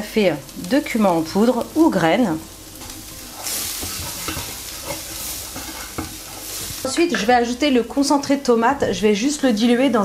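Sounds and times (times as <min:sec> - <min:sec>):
onion frying in oil: 0:00.0 - 0:10.0
wooden spatula scraping pan: 0:02.8 - 0:07.3.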